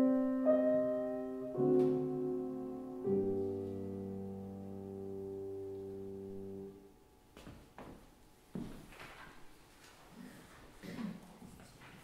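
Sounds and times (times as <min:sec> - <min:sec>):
piano chord: 0:00.0 - 0:06.9.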